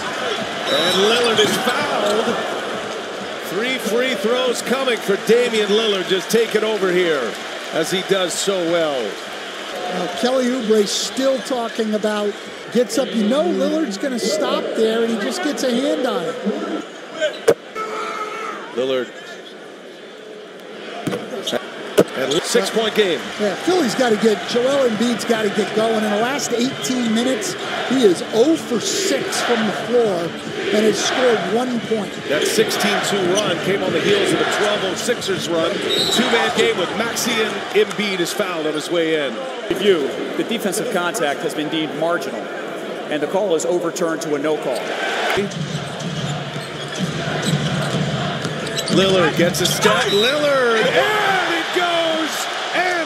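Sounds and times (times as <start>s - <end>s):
voices: 0.0s - 9.1s, 21.1s - 42.4s, 48.7s - 53.0s
arena crowd noise: 0.0s - 53.0s
crowd murmuring: 22.3s - 41.1s, 47.2s - 53.0s.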